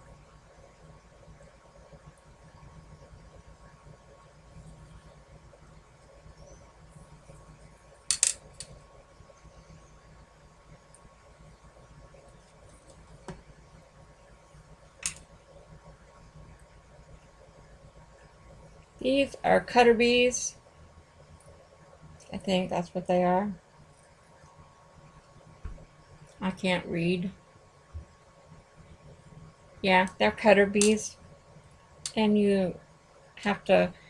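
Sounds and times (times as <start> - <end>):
faint room hum: 0.0 - 34.0
tools tapping on tabletop: 8.1 - 8.4.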